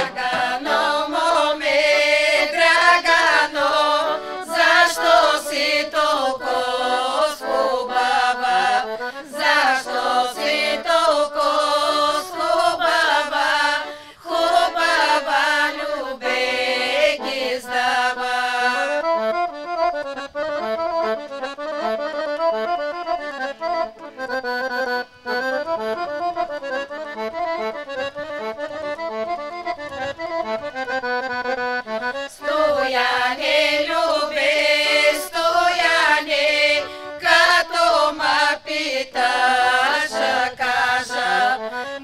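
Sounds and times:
women singing folk song: 0:00.0 - 0:19.6, 0:32.2 - 0:42.0
accordion: 0:00.0 - 0:42.0.

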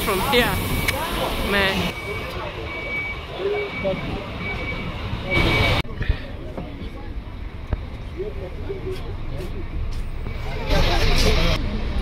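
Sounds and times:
faint passenger voices: 0:00.0 - 0:11.6.

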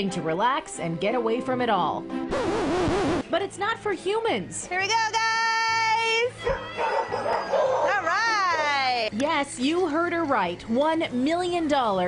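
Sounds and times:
dogs barking and yipping: 0:06.4 - 0:09.0.

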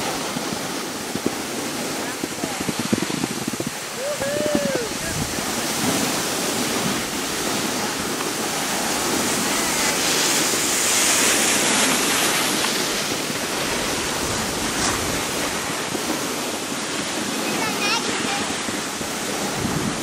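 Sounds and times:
skis sliding over snow: 0:00.0 - 0:20.0
wind on microphone: 0:00.0 - 0:20.0.

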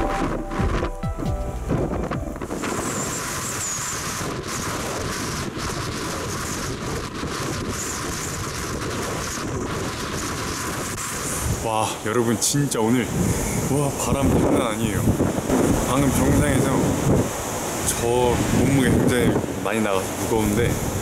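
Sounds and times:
background music: 0:00.0 - 0:02.6
high wind whistle: 0:00.0 - 0:12.1, 0:13.0 - 0:21.0
gusting wind buffeting microphone: 0:00.0 - 0:21.0.

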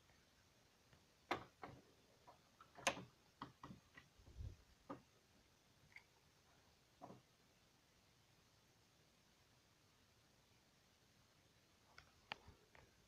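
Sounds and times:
faint clicks and light knocks: 0:00.9 - 0:05.1, 0:07.0 - 0:07.3, 0:11.9 - 0:13.0.

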